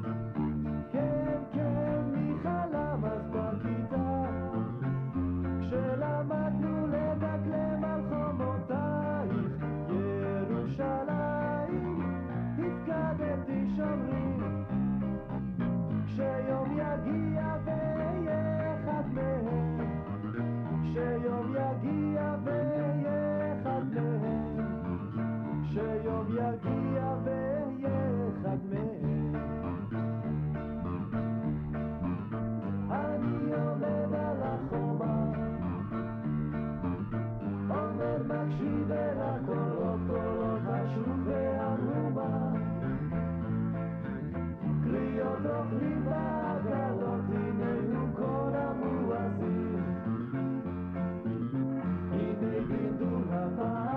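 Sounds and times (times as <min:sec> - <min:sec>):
steady bass line: 0:00.0 - 0:53.9
man singing: 0:00.6 - 0:14.8, 0:15.9 - 0:29.6, 0:32.9 - 0:36.1, 0:37.6 - 0:43.2, 0:44.6 - 0:50.4, 0:52.0 - 0:53.9.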